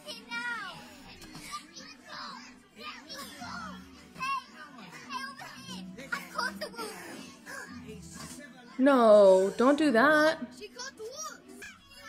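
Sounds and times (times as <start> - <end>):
background music: 0.0 - 12.0
young voices speaking urgently: 0.0 - 12.0.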